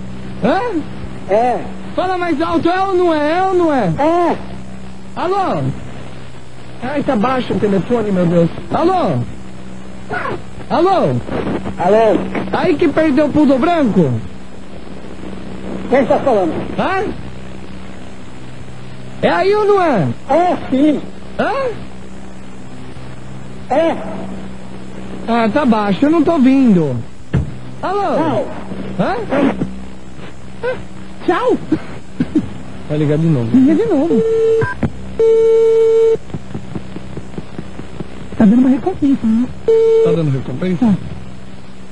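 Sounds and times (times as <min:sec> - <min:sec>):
telephone line hum with hiss: 0:00.0 - 0:41.9
telephone ring-back beep: 0:39.7 - 0:40.2.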